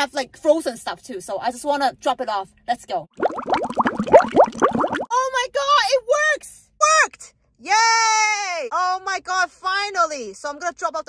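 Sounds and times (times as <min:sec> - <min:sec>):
bubbling water bloops: 0:03.1 - 0:05.1.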